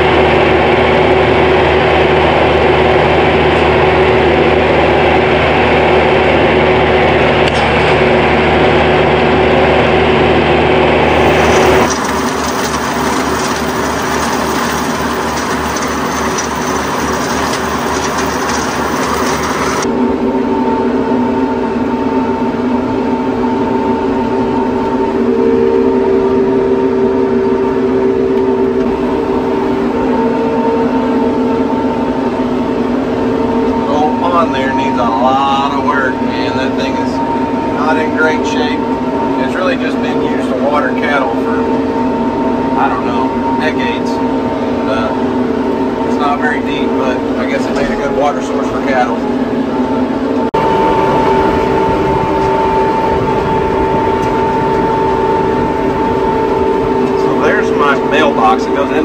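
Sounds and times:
steady whine: 0.0s - 59.0s
tractor engine running under load: 10.7s - 19.9s
fast regular pulsing: 11.0s - 19.9s.

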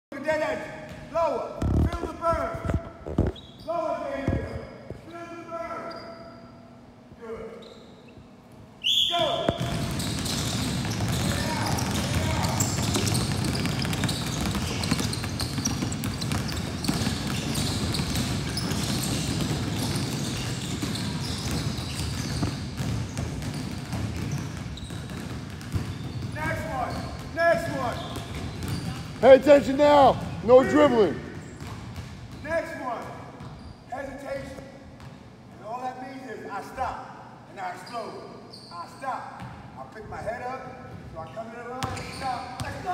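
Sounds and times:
basketballs dribbling on wood floor: 9.4s - 33.6s.

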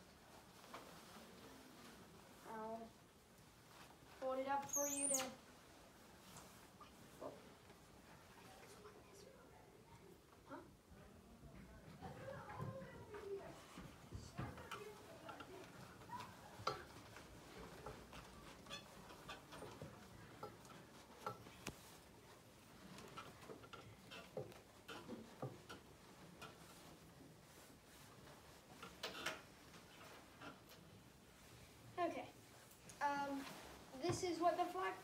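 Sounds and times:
cloth flag being folded: 0.0s - 4.2s, 14.6s - 31.8s, 32.4s - 34.0s
soft murmurs of people: 0.0s - 34.3s.

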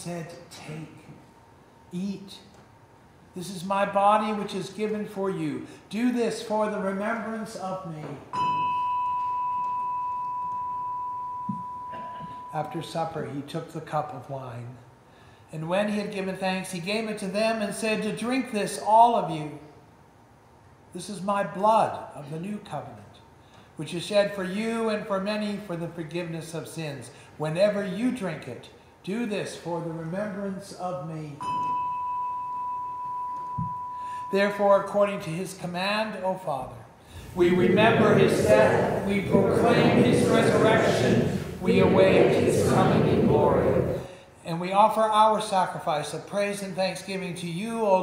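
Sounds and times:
bell ringing: 8.4s - 12.5s, 31.4s - 34.4s.

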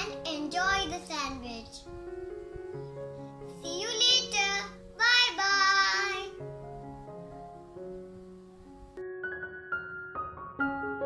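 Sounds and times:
keyboard music with held notes: 0.0s - 11.0s
child singing: 3.5s - 6.4s.

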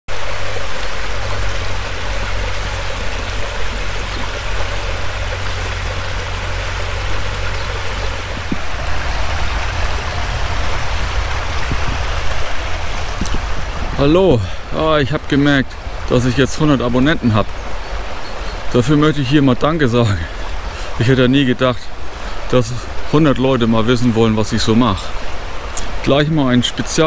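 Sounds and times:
stream running water: 0.1s - 27.0s.

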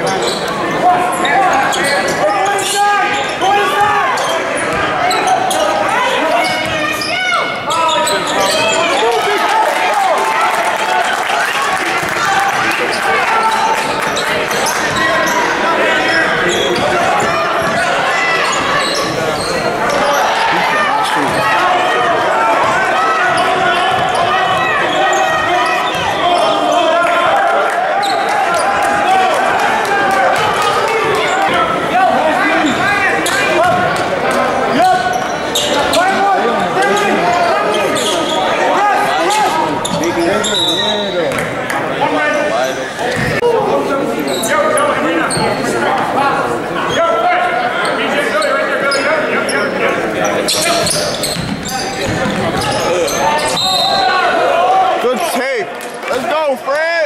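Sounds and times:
crowd chatter: 0.0s - 57.0s
ball bouncing on wooden court: 51.3s - 52.8s.

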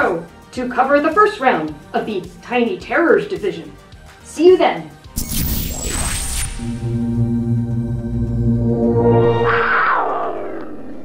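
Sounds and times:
music tones: 5.2s - 11.0s
downward sweeping whoosh effect: 6.9s - 11.0s.

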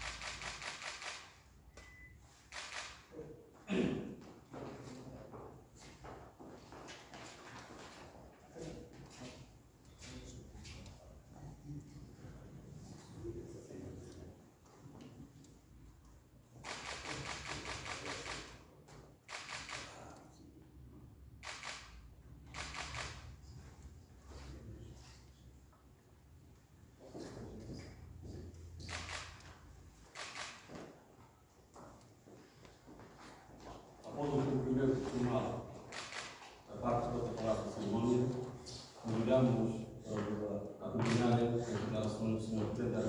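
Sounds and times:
camera shutters clicking: 0.0s - 3.1s, 16.6s - 18.6s, 19.3s - 20.0s, 21.4s - 23.4s, 28.8s - 29.5s, 30.1s - 30.8s, 35.9s - 36.6s, 41.0s - 41.4s.

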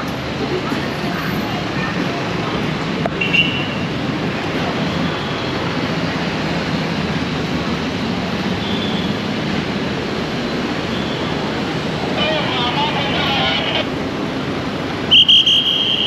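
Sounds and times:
voices passing by: 0.0s - 14.0s
street traffic noise: 0.0s - 16.0s
police whistle blasts: 15.1s - 16.0s.

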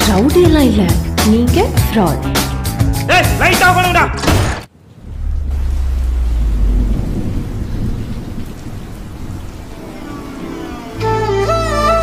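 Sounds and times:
heavy rain: 4.4s - 12.0s
low rumble of thunder: 4.7s - 10.5s.

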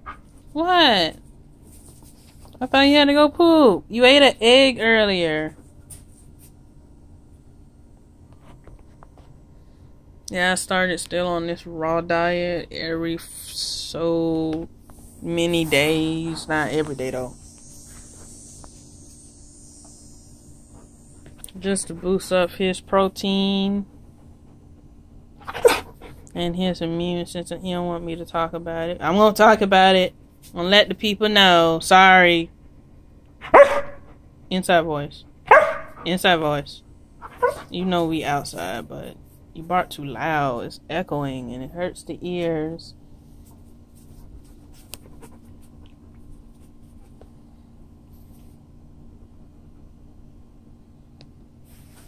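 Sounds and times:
steady low hum: 0.0s - 52.0s
insects droning: 14.7s - 26.9s, 35.2s - 39.6s
dog panting softly: 23.8s - 26.4s, 44.7s - 45.8s.

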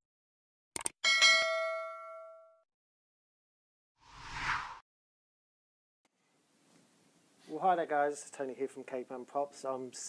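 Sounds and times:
notification bell ding: 1.0s - 2.6s.

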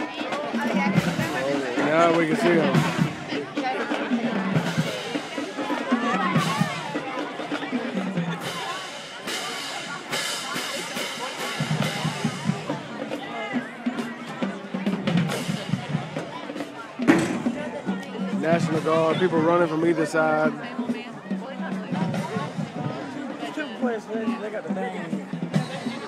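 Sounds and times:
crowd talking and shouting: 0.0s - 26.0s
marching band playing: 0.0s - 26.0s.

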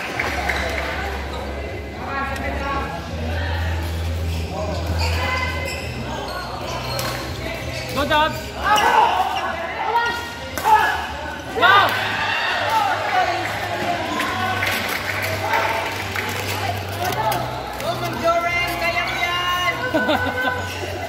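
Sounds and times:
shoes squeaking on court floor: 3.8s - 10.4s.

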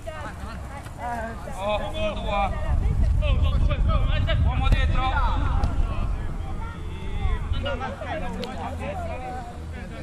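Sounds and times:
steady low rumble: 1.2s - 10.0s.

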